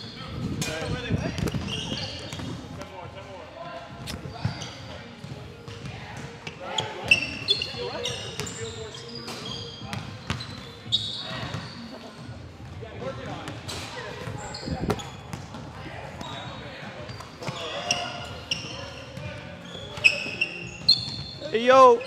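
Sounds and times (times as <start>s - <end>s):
short high squeaks: 17.1s - 21.5s.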